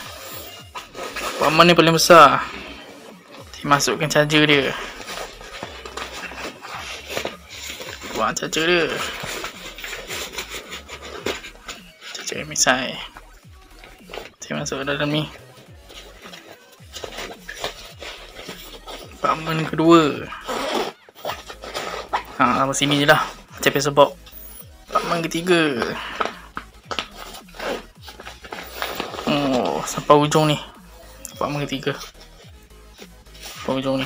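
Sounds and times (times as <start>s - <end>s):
fabric bag rustling: 0.0s - 30.8s
zipper pulled open: 15.9s - 23.5s, 26.2s - 30.1s.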